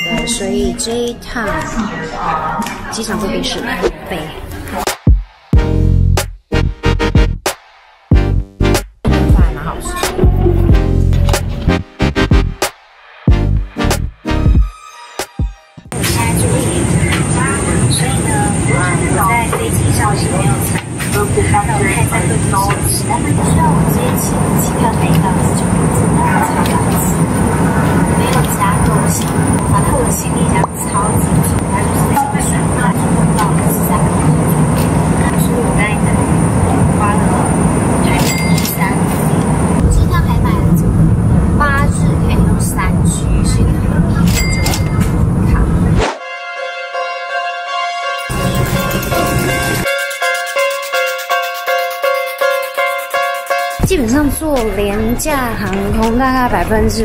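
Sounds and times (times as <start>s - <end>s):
woman talking: 0.0s - 4.8s, 16.0s - 40.8s, 41.6s - 44.4s, 53.8s - 57.0s
airplane cabin drone: 15.9s - 46.0s, 48.2s - 50.0s.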